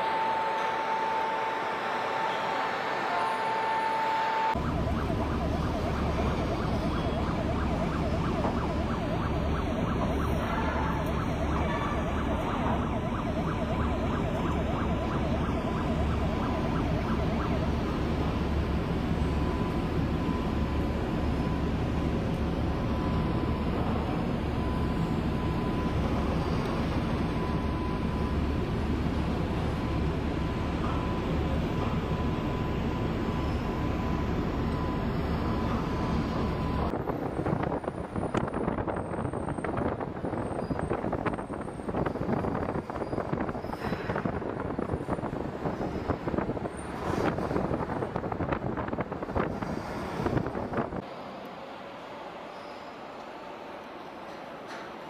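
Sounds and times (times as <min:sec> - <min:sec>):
wind buffeting microphone: 0:36.9 - 0:51.0.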